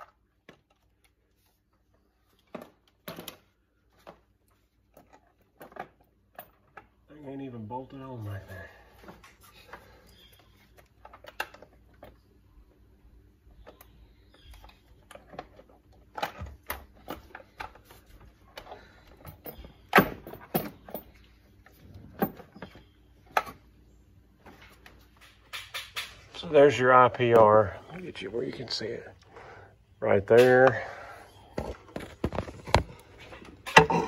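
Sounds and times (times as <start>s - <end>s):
hand tools clicking and knocking: 25.2s - 26.5s, 33.4s - 34.0s.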